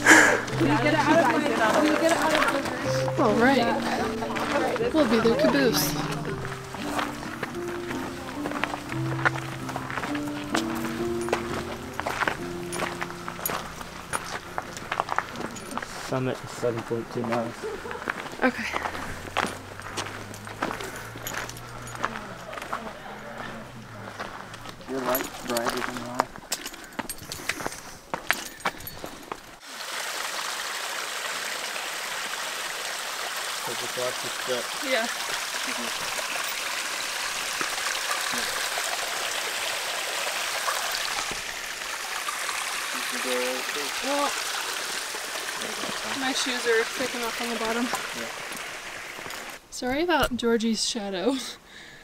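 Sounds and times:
mountain stream rushing: 0.0s - 26.2s, 29.5s - 49.7s
footsteps on rocky trail: 0.0s - 29.6s
faint voices: 20.6s - 26.2s.

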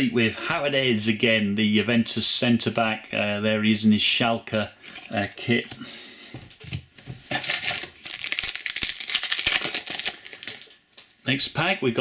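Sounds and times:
wrapper crinkling and tearing: 7.3s - 10.8s.

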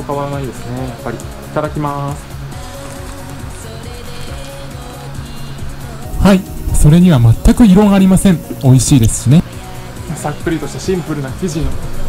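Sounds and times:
background music with sustained tones: 0.0s - 12.0s.

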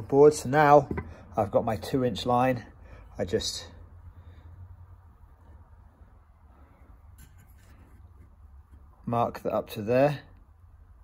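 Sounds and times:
steady low hum: 0.0s - 11.0s
wood rustling on bench: 6.9s - 9.0s.

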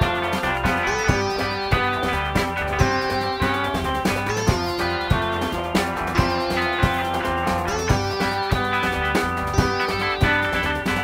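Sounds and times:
instrumental rock band playing: 0.0s - 11.0s.

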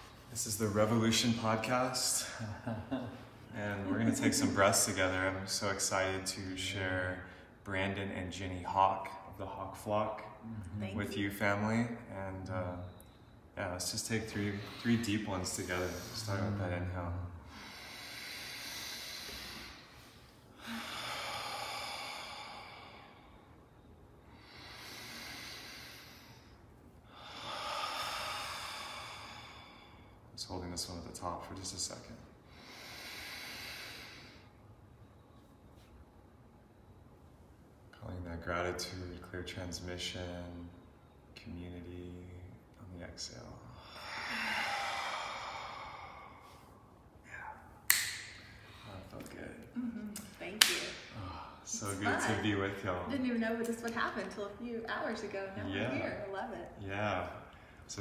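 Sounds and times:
people breathing deeply: 12.8s - 30.3s, 32.4s - 34.8s, 43.6s - 49.1s, 50.9s - 52.5s.

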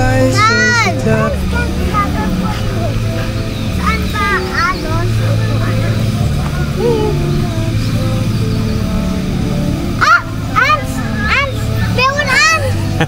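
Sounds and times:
background music with low notes: 0.0s - 13.0s
child's high voice: 0.3s - 3.0s, 3.8s - 7.3s, 10.0s - 12.8s.

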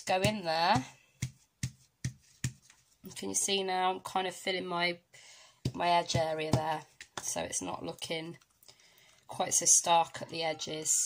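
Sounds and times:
tool tapping on paper: 0.2s - 2.8s, 5.6s - 7.2s.

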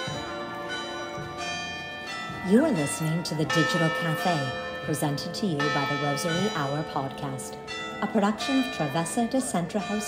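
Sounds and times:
bells ringing: 0.0s - 10.0s.

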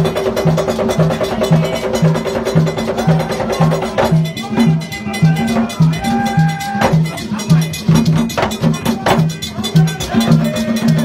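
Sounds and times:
struck metal bell ringing: 0.4s - 11.0s.

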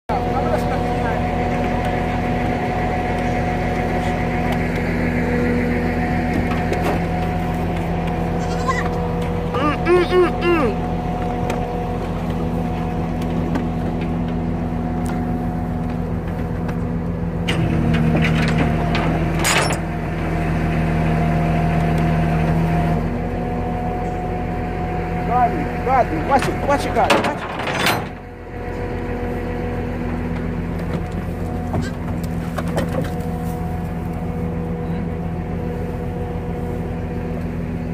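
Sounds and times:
vehicle engine idling: 0.1s - 37.9s
goat bleating: 8.2s - 10.9s.

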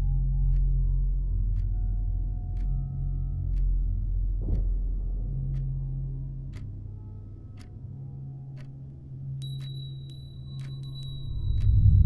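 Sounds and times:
high bell-like ringing tone: 9.4s - 12.0s
sharp ticks: 9.4s - 12.0s.

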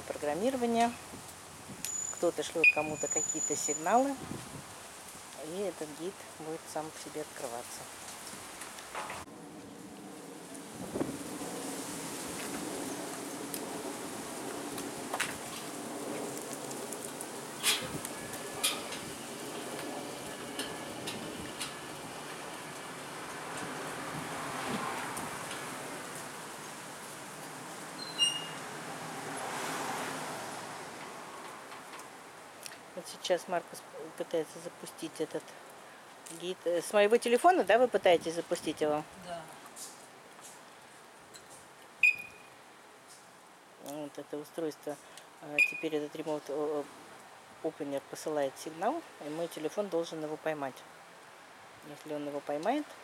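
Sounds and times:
sliding gate rolling rumble: 8.3s - 29.5s
short high electronic beep: 42.0s - 42.5s.

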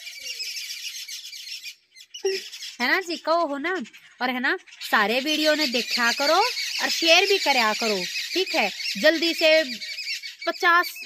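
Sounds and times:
birds chirping rapidly: 0.0s - 11.0s.

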